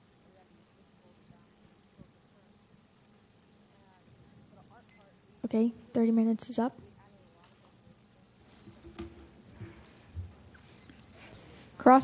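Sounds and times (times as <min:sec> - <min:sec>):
short high beeps: 0:08.5 - 0:09.0, 0:09.8 - 0:11.3
soft thumps: 0:08.7 - 0:10.6.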